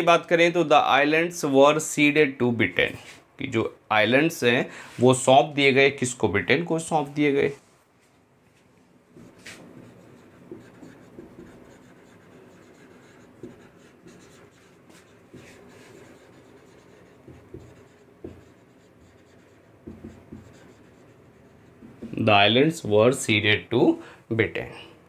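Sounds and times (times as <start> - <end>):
marker writing on whiteboard: 9.1 - 22.6.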